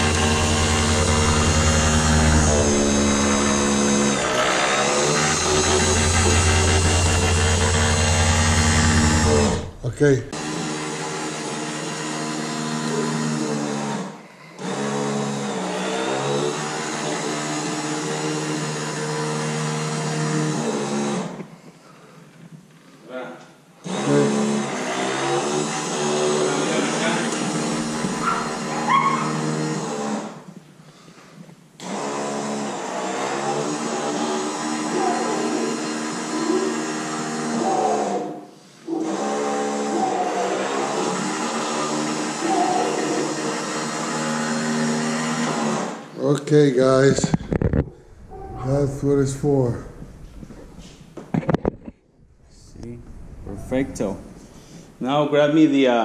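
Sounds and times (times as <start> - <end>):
stair-climbing dolly motor whining: 0.0 - 9.9, 26.6 - 29.6.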